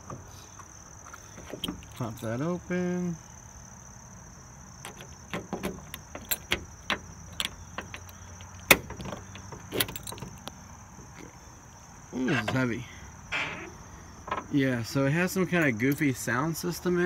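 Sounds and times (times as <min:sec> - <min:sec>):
car keys jangling: 0:01.4 - 0:02.4, 0:04.8 - 0:10.5
lock clicks and rattles: 0:04.8 - 0:10.6.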